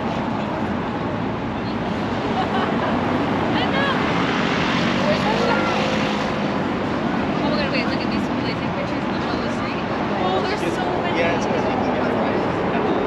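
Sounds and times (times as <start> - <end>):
people talking: 3.5 - 4.1, 5.0 - 6.1, 7.4 - 13.0.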